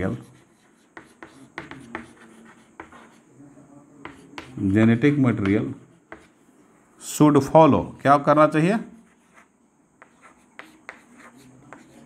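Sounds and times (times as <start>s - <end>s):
chalk scratching on chalkboard: 0.0s - 3.3s, 4.0s - 6.4s, 8.8s - 12.0s.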